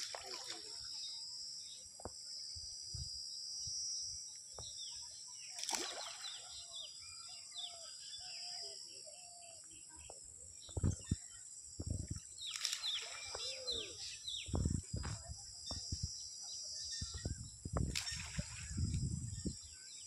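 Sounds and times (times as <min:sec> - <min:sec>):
splashes in pond water: 0:00.0 - 0:00.9, 0:05.5 - 0:06.8, 0:12.4 - 0:14.0, 0:17.9 - 0:19.0
birds chirping: 0:04.6 - 0:20.0.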